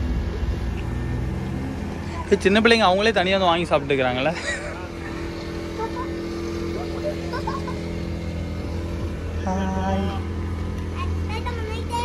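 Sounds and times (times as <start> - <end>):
constant tone: 0.0 - 12.0
low mechanical hum: 0.0 - 12.0.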